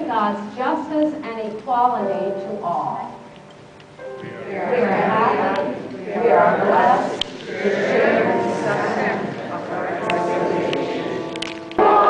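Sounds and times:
group of voices singing: 4.4s - 12.0s.

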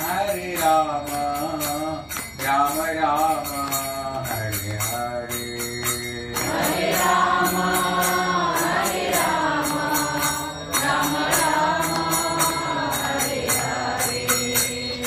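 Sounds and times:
man singing devotional chant: 0.0s - 15.0s
small hand cymbals: 0.0s - 15.0s.

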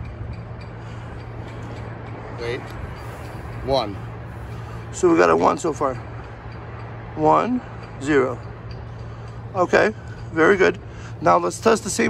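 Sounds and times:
constant low hum: 0.0s - 12.0s.

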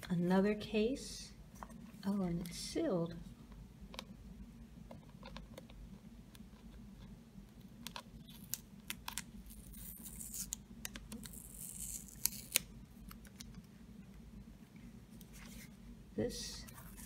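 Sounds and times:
cardboard seal tearing: 9.5s - 12.7s.

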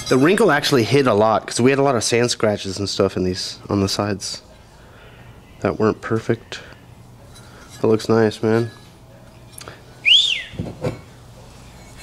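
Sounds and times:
person whistling gliding note: 10.0s - 10.6s.

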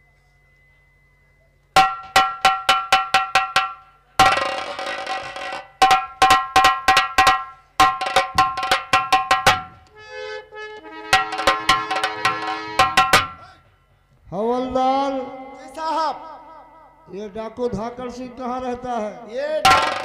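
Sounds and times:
ringing metallic percussion: 0.0s - 9.8s, 11.0s - 13.5s.

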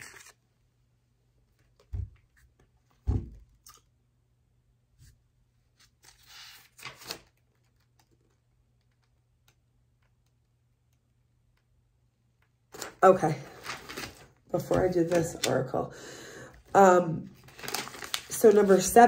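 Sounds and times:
paper rustling: 0.0s - 0.4s, 5.8s - 9.1s, 12.7s - 15.7s, 17.4s - 19.0s.

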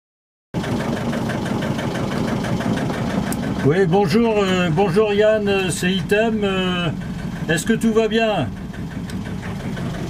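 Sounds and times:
boat engine knocking hum: 0.6s - 10.0s.

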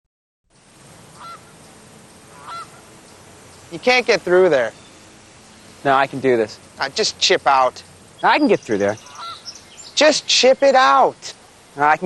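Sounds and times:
outdoor background noise: 0.5s - 12.0s
short bird call: 1.2s - 1.5s, 2.3s - 2.8s, 9.0s - 10.0s.

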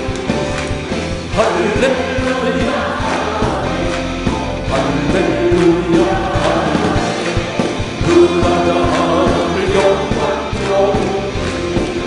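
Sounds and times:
band with drums: 0.0s - 12.0s
man singing into microphone: 1.3s - 12.0s
voices singing along: 1.3s - 12.0s.

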